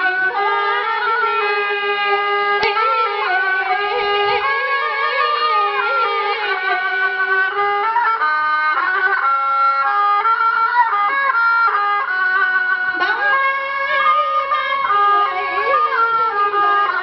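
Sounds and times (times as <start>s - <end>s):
instrumental melody in held notes: 0.0s - 17.0s.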